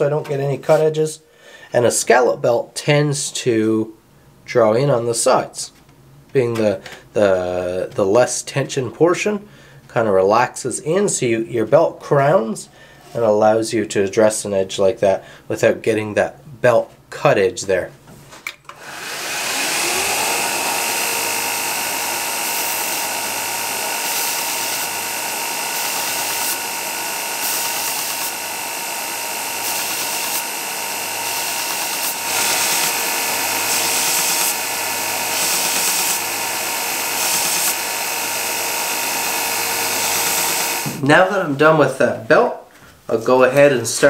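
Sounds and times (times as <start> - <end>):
belt grinder grinding wood: 18.7 - 41.0.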